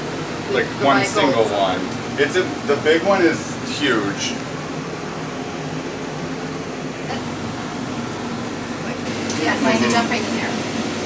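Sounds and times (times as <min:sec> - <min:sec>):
air conditioning hum: 0:00.0 - 0:11.0.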